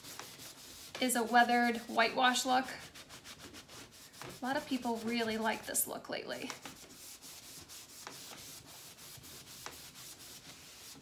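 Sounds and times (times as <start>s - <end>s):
foam pad rubbing on wood: 0.0s - 5.8s, 6.5s - 11.0s.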